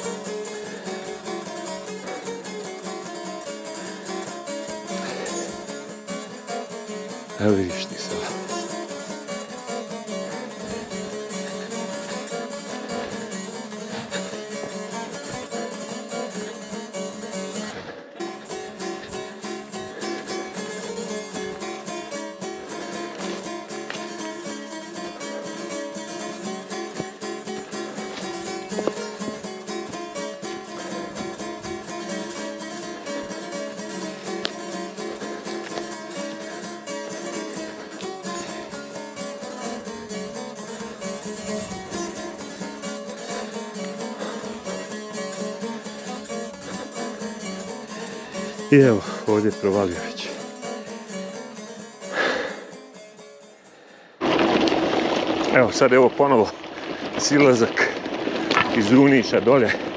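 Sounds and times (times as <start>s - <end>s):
plucked guitar music: 0.0s - 59.9s.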